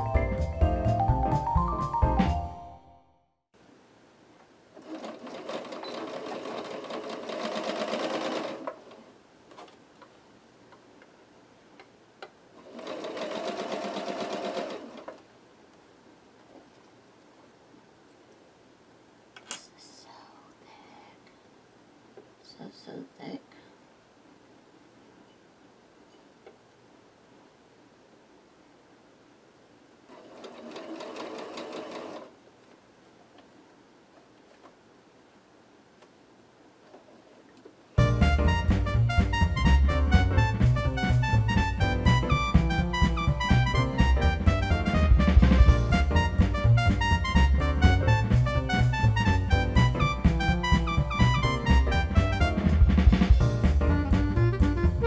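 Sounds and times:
sewing machine stitching: 0:04.8 - 0:09.1, 0:12.6 - 0:15.2, 0:30.1 - 0:32.3.

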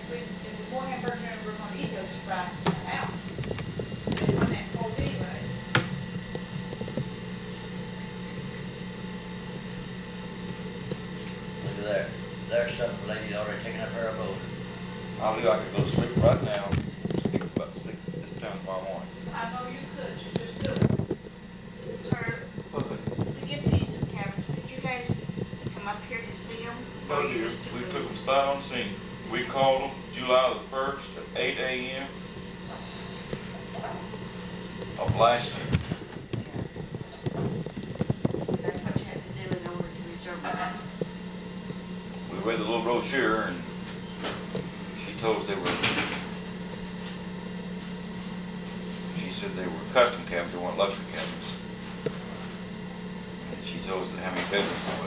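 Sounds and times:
indistinct talking: 0:00.0 - 0:06.3, 0:11.6 - 0:43.8
steady low hum: 0:00.0 - 0:55.0.

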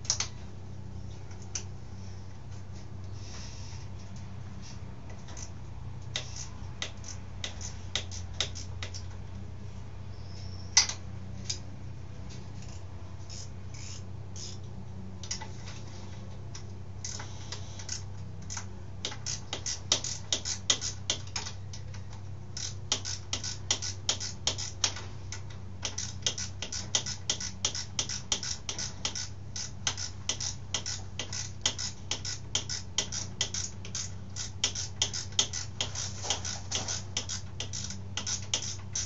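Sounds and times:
steady low hum: 0:00.0 - 0:39.0
ratchet wrench clicking: 0:22.6 - 0:39.0.

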